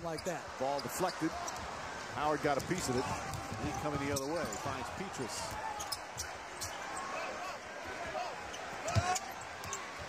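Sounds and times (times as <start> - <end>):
arena crowd noise: 0.0 - 10.0
sneaker squeaks: 3.7 - 4.8, 5.5 - 7.1, 8.5 - 10.0.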